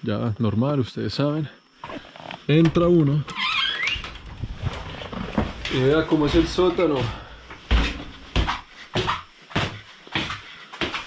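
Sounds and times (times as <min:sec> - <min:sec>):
footsteps going down stairs: 0:03.6 - 0:11.0.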